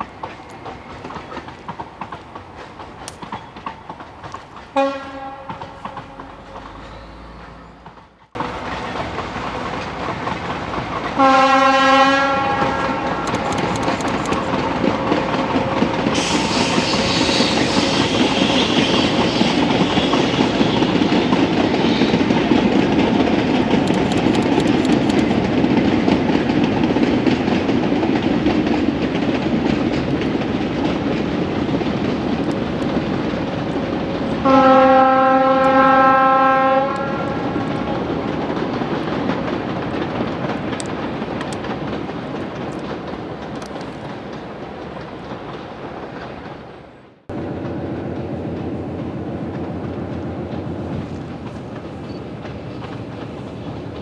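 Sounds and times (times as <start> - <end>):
diesel locomotive running: 0.0 - 54.0
train horn blast: 4.8 - 8.0, 11.2 - 13.2, 15.0 - 20.2, 34.4 - 37.6
high squeal: 6.2 - 8.1, 16.2 - 21.0.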